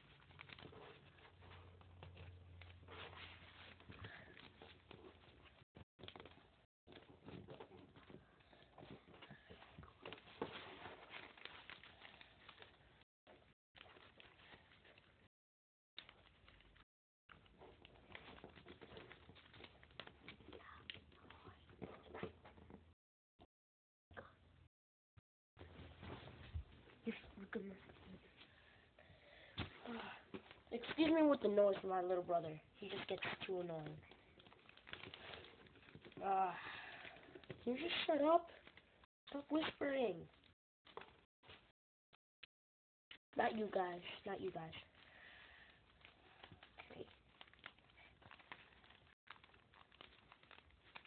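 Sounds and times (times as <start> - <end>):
paper rustling and crinkling: 0.0 - 15.3, 16.0 - 22.8, 29.6 - 32.0, 32.8 - 41.7, 43.5 - 51.0.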